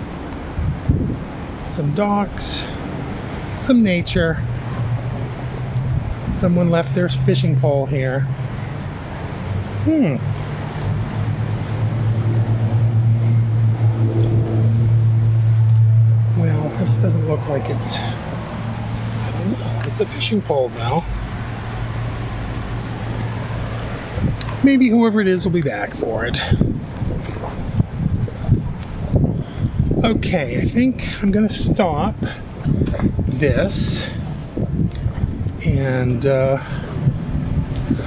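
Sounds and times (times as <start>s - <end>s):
engine running low hum: 0.0s - 38.0s
wind buffeting microphone: 0.0s - 38.0s.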